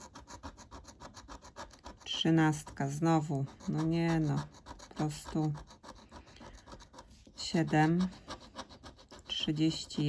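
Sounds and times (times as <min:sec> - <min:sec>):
metal scraper scratching card: 0:00.0 - 0:10.0.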